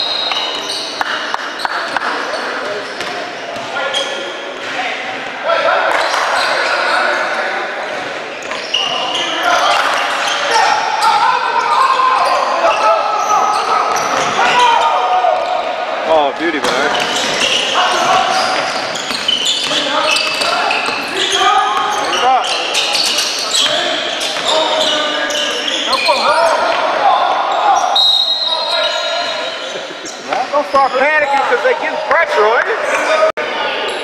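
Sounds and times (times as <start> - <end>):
sneaker squeaks: 0.0 - 5.3, 5.9 - 15.8, 16.6 - 32.0
voices calling out: 0.0 - 34.0.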